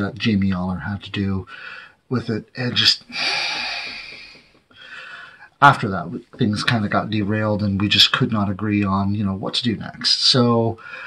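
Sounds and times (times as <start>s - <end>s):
soft breath: 1.5s - 2.0s, 3.1s - 5.6s, 10.8s - 11.0s
man sighing into microphone: 3.1s - 5.5s.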